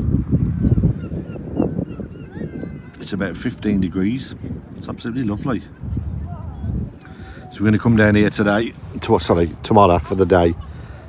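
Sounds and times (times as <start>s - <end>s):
wind buffeting microphone: 0.0s - 11.0s
faint high bird calls: 0.6s - 3.0s.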